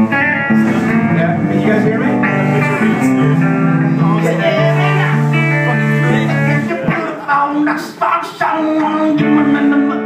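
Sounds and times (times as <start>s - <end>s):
amplified electric guitars noodling: 0.0s - 10.0s.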